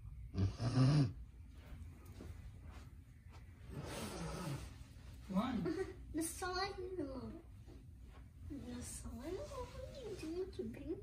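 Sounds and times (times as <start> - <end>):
person snoring: 0.3 - 1.2.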